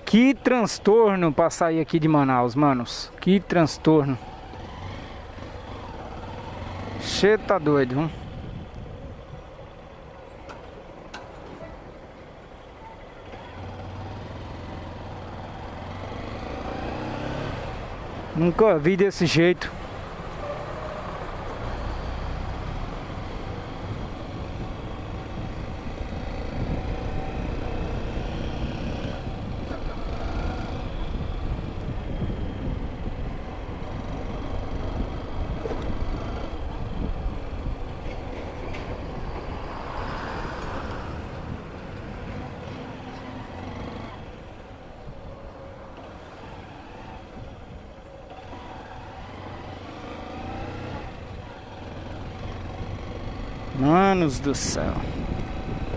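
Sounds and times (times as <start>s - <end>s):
road and wind rumble: 0.0s - 55.9s.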